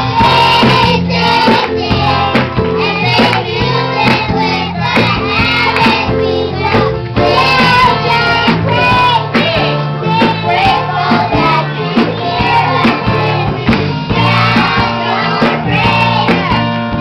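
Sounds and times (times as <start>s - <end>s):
children's choir singing gospel: 0.0s - 17.0s
drum kit steady beat: 0.0s - 17.0s
live band playing: 0.0s - 17.0s.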